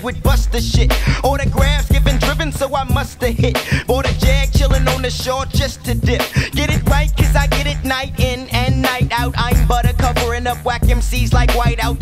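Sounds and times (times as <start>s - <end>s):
heavy bass line: 0.0s - 12.0s
rapping over a beat: 0.0s - 12.0s.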